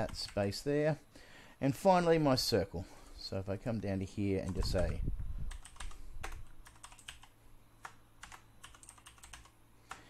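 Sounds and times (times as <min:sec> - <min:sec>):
typing on computer keyboard: 0:04.5 - 0:10.0.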